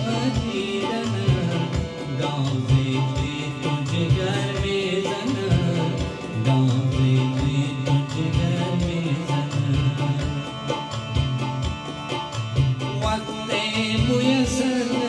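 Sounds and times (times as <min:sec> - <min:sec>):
man singing: 0:00.0 - 0:11.2, 0:13.0 - 0:15.0
electronic keyboard: 0:00.0 - 0:15.0
steady drum beat: 0:00.0 - 0:15.0.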